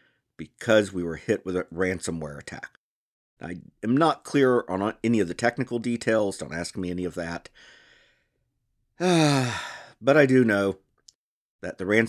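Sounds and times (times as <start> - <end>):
person sighing: 9.0 - 10.0.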